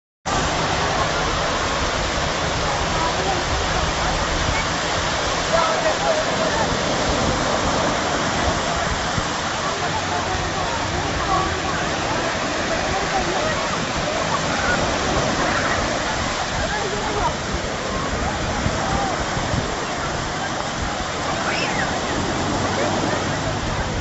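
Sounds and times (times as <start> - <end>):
shallow surf washing: 0.2 - 24.0.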